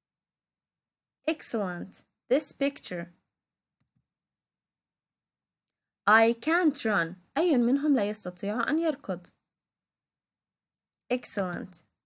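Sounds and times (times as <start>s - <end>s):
computer mouse clicks: 3.8s - 4.1s.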